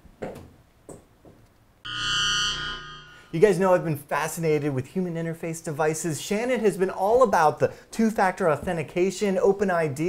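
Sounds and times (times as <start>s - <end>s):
buzzy electronic chord: 1.9s - 3.6s.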